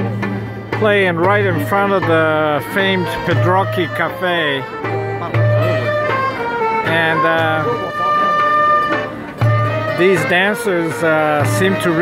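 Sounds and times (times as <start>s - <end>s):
flute melody: 0.0s - 12.0s
violin melody: 0.0s - 12.0s.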